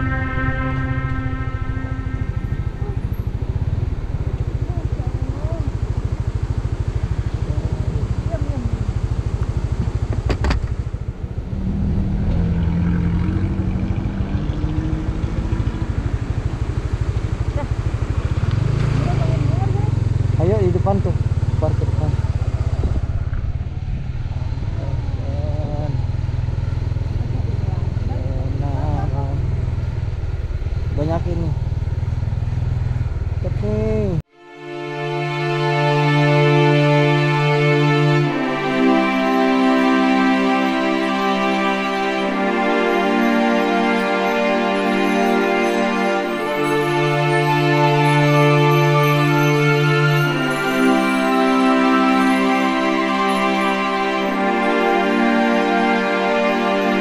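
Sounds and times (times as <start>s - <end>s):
motorcycle engine droning: 0.0s - 34.3s.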